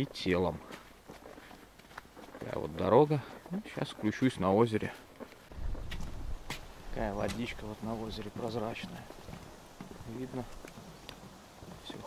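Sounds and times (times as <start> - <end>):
footstep clicks: 0.0 - 12.0
wind rumble on microphone: 5.5 - 8.4.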